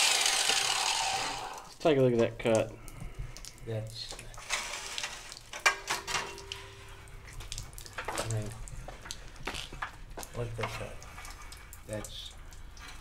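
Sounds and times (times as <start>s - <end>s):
water trickling and hissing: 1.4s - 5.7s, 6.3s - 13.0s.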